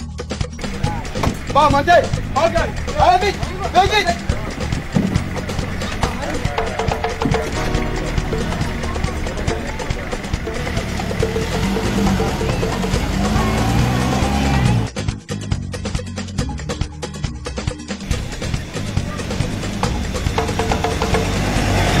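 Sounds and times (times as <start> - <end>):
background music: 0.0 - 22.0
men calling out: 0.6 - 14.8
truck engine running: 0.6 - 15.0, 18.0 - 22.0.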